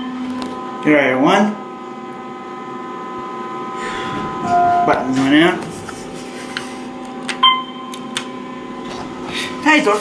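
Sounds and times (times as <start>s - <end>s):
elevator hum: 1.8s - 10.0s
short electronic tone: 3.9s - 5.5s.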